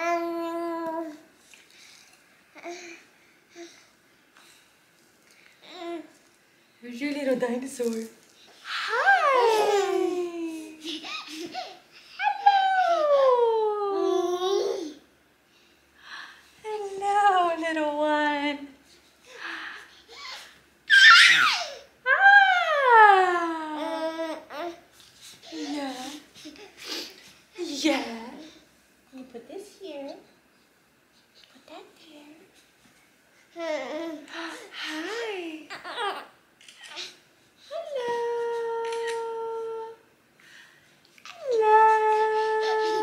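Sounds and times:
baby squealing: 0:20.2 - 0:21.8
baby cooing: 0:41.2 - 0:43.0.

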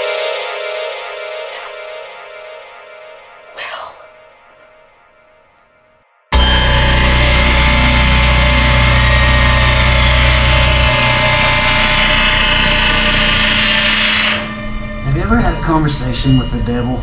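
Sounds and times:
deep low hum: 0:06.4 - 0:15.8
dense noisy drone: 0:06.4 - 0:16.1
steady tones: 0:06.4 - 0:17.0.

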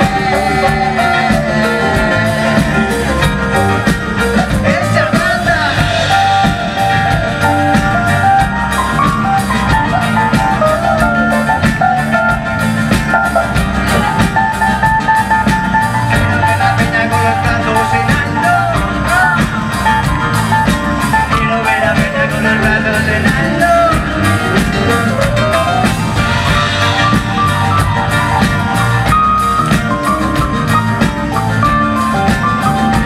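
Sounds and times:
live band playing: 0:00.0 - 0:33.0
steady drum beat: 0:00.0 - 0:33.0.

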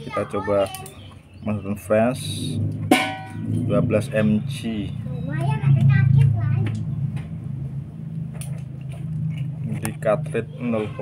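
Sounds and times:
steady low hum: 0:01.0 - 0:11.0.

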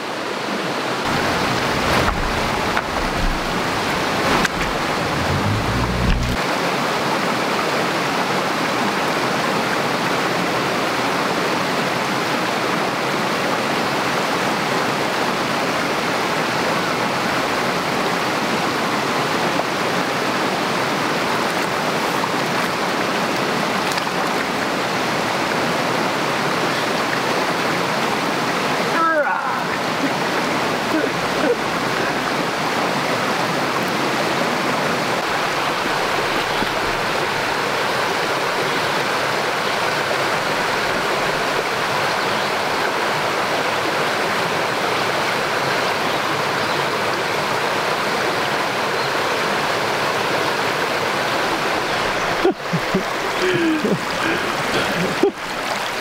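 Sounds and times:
stream rushing over rocks: 0:00.0 - 0:56.0
low rumble: 0:01.1 - 0:06.4.

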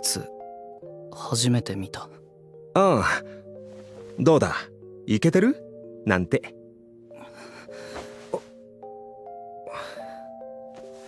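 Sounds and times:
soft bell-like background music: 0:00.0 - 0:11.0.

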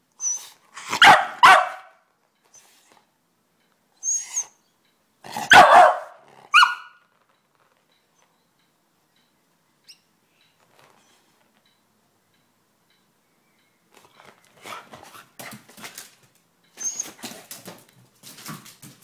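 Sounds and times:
dog scuffling and scrabbling: 0:14.0 - 0:19.0.

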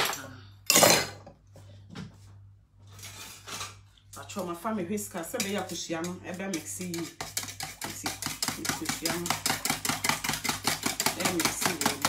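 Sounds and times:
utensils clinking and scraping in bowl: 0:02.9 - 0:12.0.

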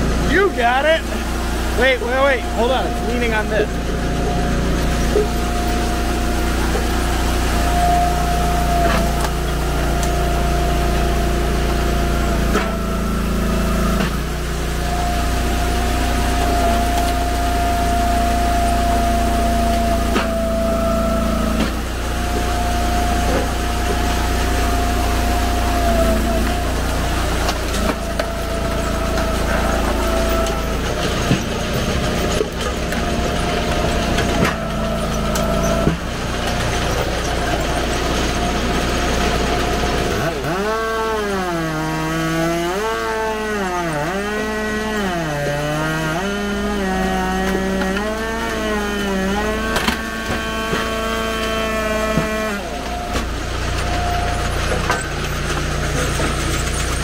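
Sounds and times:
hydraulic whine: 0:00.0 - 0:57.0
wood splitter engine running: 0:00.0 - 0:57.0
wood cracking as it splits: 0:19.4 - 0:57.0.

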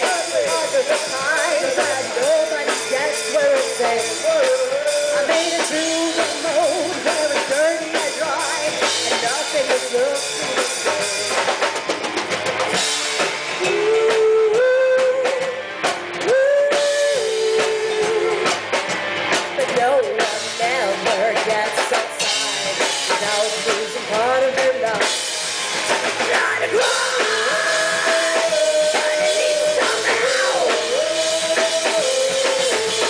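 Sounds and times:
drum kit: 0:00.0 - 0:33.0
electric guitar: 0:00.0 - 0:33.0
rock band playing loud: 0:00.0 - 0:33.0.

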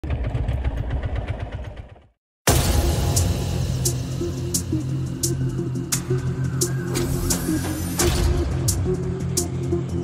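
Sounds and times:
go-kart engine idling: 0:00.0 - 0:02.1.

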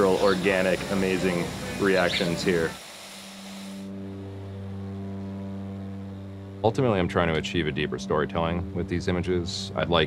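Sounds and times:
turboprop airplane engines droning: 0:00.0 - 0:09.8.

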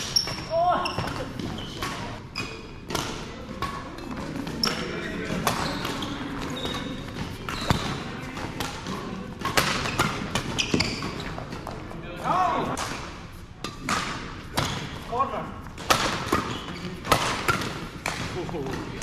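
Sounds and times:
rackets striking shuttlecock: 0:04.6 - 0:11.8, 0:15.8 - 0:19.0.

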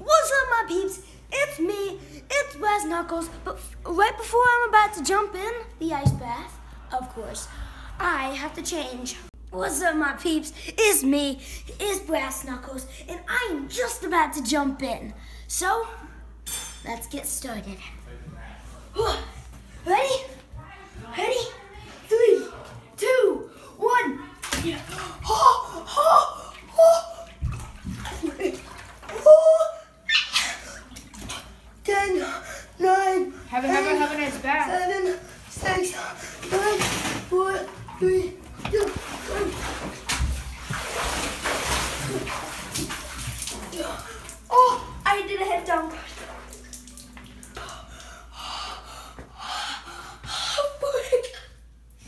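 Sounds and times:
water sloshing in bathtub: 0:15.8 - 0:52.0.

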